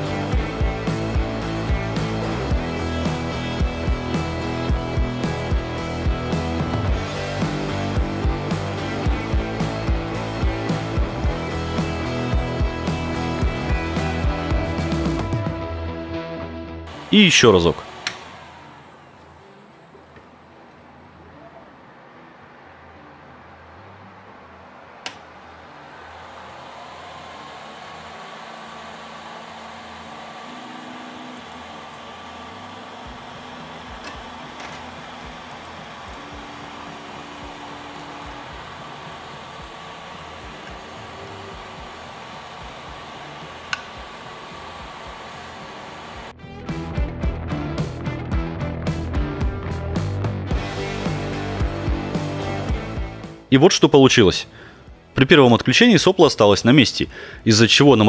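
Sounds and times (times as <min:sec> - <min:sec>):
cooling fans whirring: 0:00.0 - 0:15.5, 0:16.9 - 0:46.4, 0:50.5 - 0:58.0
guitar music: 0:00.0 - 0:55.4
sharp click: 0:18.0 - 0:18.3, 0:25.0 - 0:25.3, 0:43.7 - 0:44.0.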